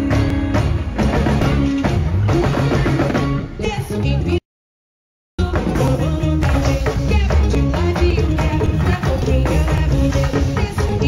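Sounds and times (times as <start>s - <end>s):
driving drums and percussion: 0.0s - 4.2s, 5.4s - 11.0s
bass line: 0.0s - 4.4s, 5.4s - 11.0s
live band playing: 0.0s - 4.4s, 5.4s - 11.0s.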